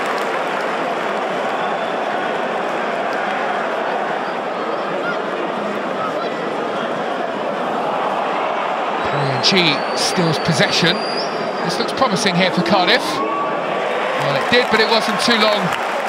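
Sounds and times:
stadium crowd hubbub: 0.0s - 16.0s.

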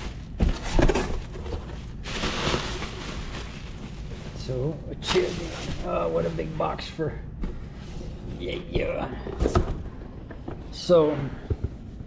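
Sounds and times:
plastic packing crinkling: 0.0s - 6.5s.

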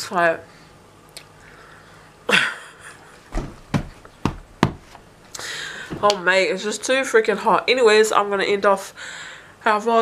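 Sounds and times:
short knocks: 3.3s - 5.0s.

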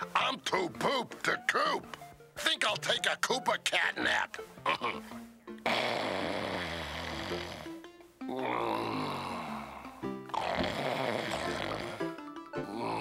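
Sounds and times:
background music: 0.0s - 13.0s
cartoon character snoring: 5.6s - 13.0s.

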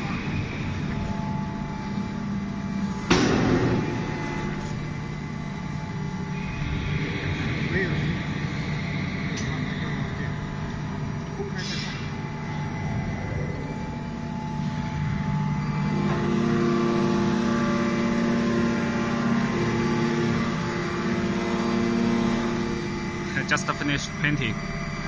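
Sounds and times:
hydraulic system humming: 0.0s - 25.0s.

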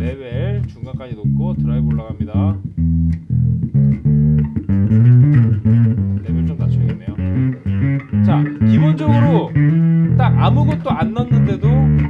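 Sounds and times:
distorted electric bass riff: 0.0s - 12.0s.

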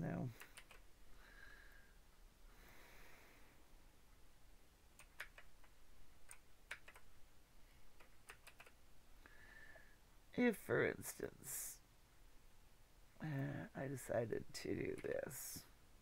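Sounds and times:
mouse and keyboard clicks: 0.4s - 0.9s, 5.0s - 7.1s, 8.0s - 8.8s.

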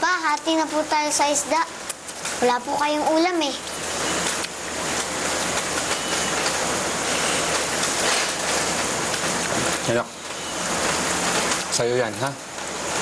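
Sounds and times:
loud steady rushing hiss: 0.0s - 13.0s.

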